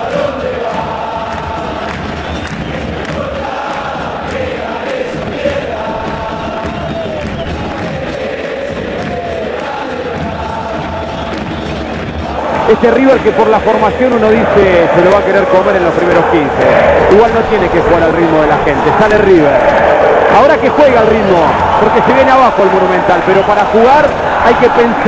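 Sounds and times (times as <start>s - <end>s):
stadium crowd singing a chant: 0.0s - 25.0s.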